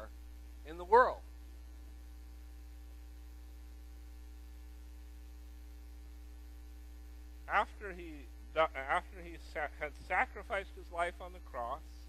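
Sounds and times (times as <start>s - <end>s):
faint steady tone: 0.0s - 12.0s
low mains hum: 0.0s - 12.0s.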